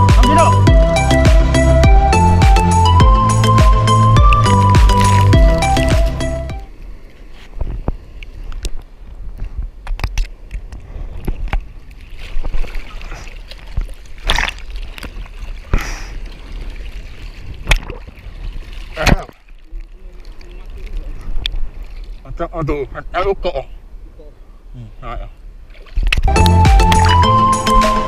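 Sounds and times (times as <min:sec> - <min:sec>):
background music: 0:00.0 - 0:06.7, 0:26.3 - 0:28.0
seawater sloshing and splashing: 0:03.6 - 0:22.3, 0:25.6 - 0:26.3.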